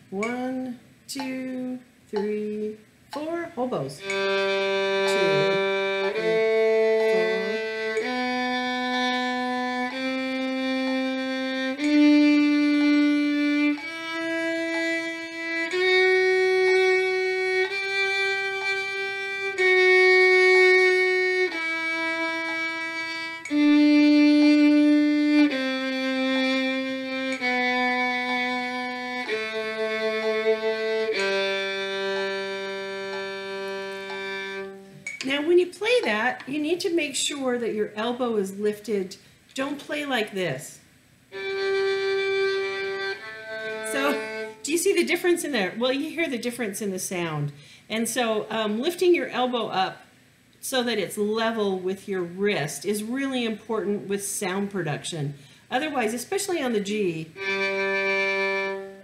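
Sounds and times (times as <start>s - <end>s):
violin playing a scale: 4.0s - 35.1s, 41.3s - 45.1s, 57.2s - 59.0s.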